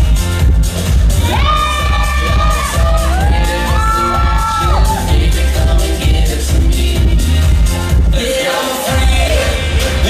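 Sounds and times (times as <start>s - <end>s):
hip-hop track with heavy bass: 0.0s - 10.0s
children shouting and cheering: 1.2s - 5.2s.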